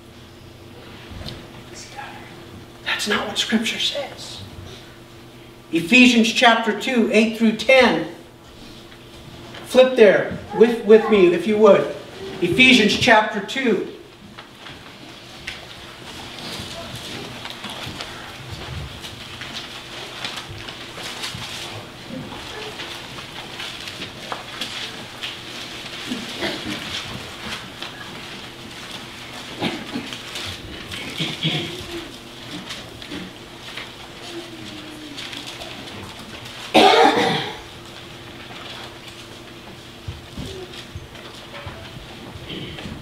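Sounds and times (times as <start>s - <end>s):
loud cough: 29.6s - 30.2s, 31.0s - 32.0s, 36.7s - 37.7s.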